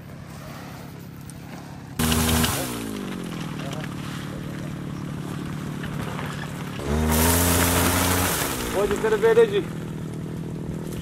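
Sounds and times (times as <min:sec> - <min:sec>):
small engine revving: 0:01.4 - 0:11.0
loud hiss: 0:02.0 - 0:03.1, 0:06.9 - 0:09.0.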